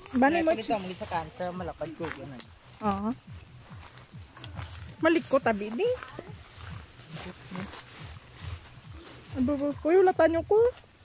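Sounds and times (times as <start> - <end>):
footsteps through undergrowth: 0.0 - 11.0
grass and brush rustling: 0.0 - 11.0
leaves scraping: 0.0 - 11.0.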